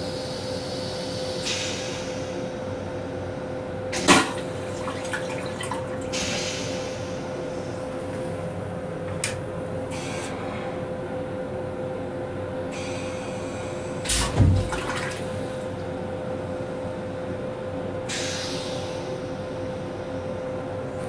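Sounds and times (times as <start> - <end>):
steady hum: 0.0 - 21.0
toilet flushing water spray: 4.0 - 7.1.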